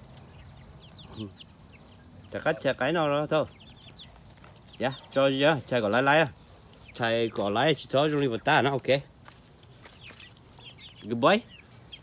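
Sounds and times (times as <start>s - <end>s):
chickens peeping: 0.0s - 12.0s.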